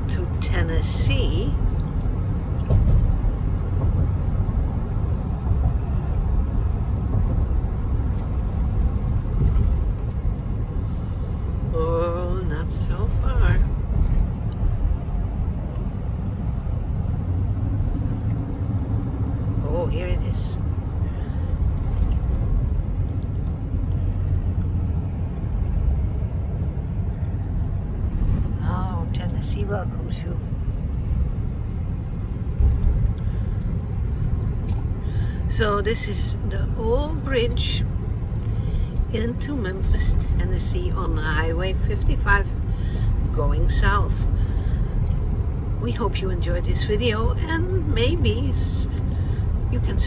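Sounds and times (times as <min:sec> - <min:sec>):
car road noise rumble: 0:00.0 - 0:50.0.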